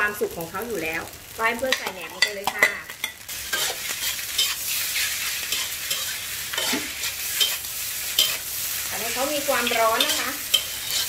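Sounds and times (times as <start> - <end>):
rice sizzling in a wok: 0.0 - 11.0
spatula scraping a pan: 1.7 - 11.0.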